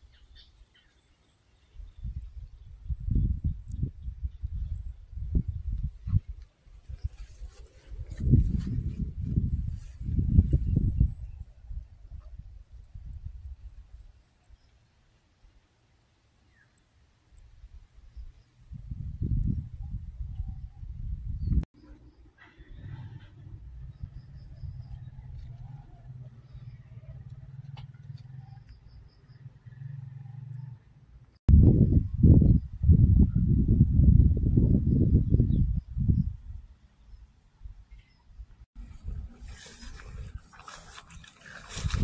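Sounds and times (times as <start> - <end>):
wind buffeting microphone: 1.8 - 14.0, 17.7 - 21.7, 31.5 - 36.7, 38.4 - 42.0.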